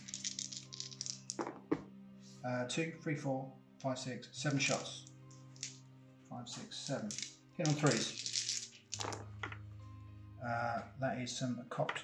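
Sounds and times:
dice rattling in hand: 0:00.0 - 0:01.5, 0:04.5 - 0:05.0, 0:05.6 - 0:05.8, 0:06.7 - 0:09.3
dice knocking on tabletop: 0:00.0 - 0:01.9, 0:06.6 - 0:09.6.

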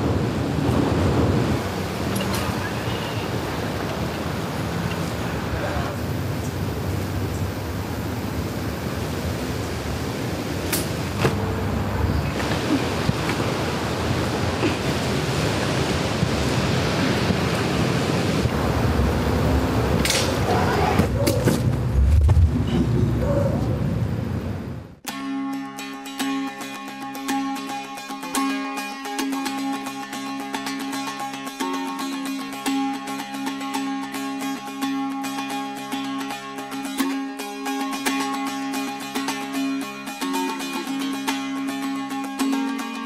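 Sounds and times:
wind buffeting microphone: 0:00.0 - 0:11.4, 0:12.1 - 0:24.6
steady rushing noise: 0:00.0 - 0:25.0.

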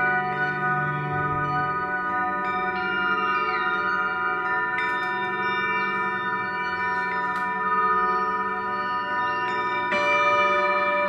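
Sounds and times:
singing bowls ringing: 0:00.0 - 0:11.0.

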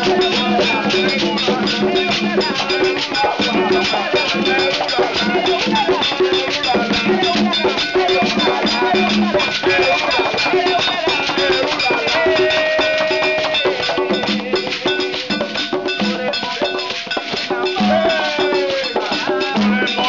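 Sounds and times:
person singing long held lines: 0:00.0 - 0:15.4, 0:16.1 - 0:20.0
hand drums playing: 0:00.0 - 0:20.0.

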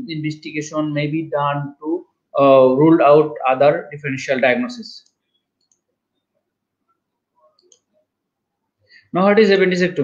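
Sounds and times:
faint clicks: 0:05.0 - 0:05.9.

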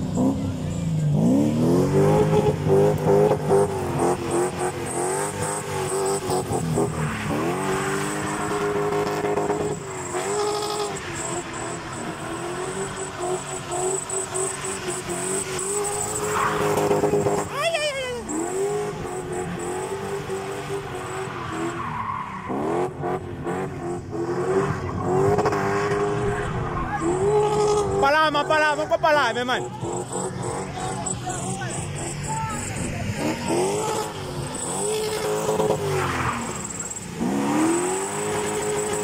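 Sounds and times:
car engine revving: 0:00.0 - 0:39.0.

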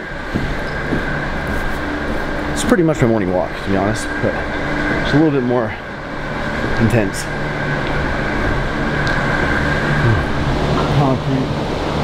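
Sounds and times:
machine drone with high whine: 0:00.0 - 0:12.0.

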